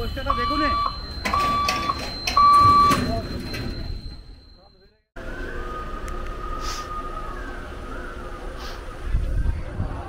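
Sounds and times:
loud electronic beep: 0.0s - 5.0s
faint steady high tone: 0.0s - 8.5s.

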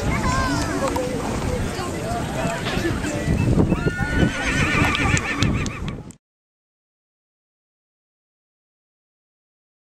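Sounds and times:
horse whinnying: 3.7s - 5.9s.

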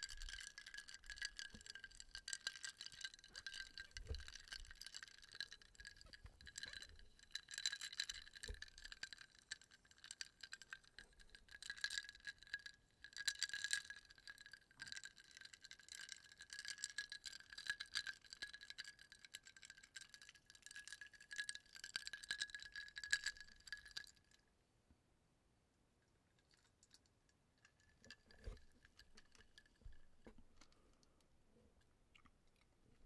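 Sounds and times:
ice cubes clinking in glass: 0.0s - 9.0s.

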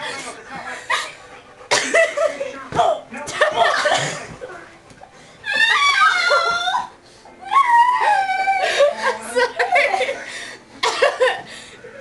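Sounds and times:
dog whining: 5.4s - 8.6s.

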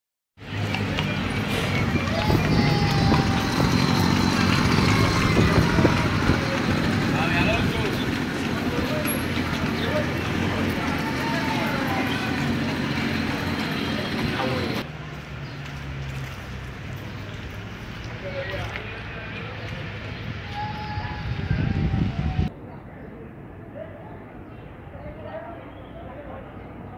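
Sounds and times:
people's voices: 0.4s - 14.9s, 18.0s - 26.9s
low engine hum: 0.4s - 18.2s
passing traffic: 0.4s - 26.9s.

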